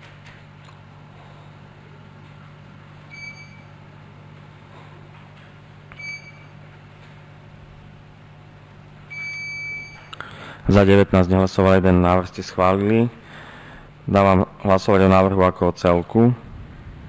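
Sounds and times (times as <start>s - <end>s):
steady low hum: 0.0s - 17.0s
longer beep: 3.1s - 3.7s, 6.0s - 6.5s, 9.1s - 10.1s
short high beeps: 3.1s - 3.7s, 5.9s - 6.5s, 9.1s - 10.1s.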